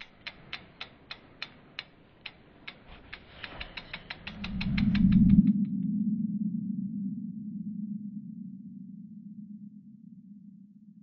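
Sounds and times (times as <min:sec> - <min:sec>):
sharp mechanical ticks: 0:00.0 - 0:05.6
low rumble: 0:03.4 - 0:11.0.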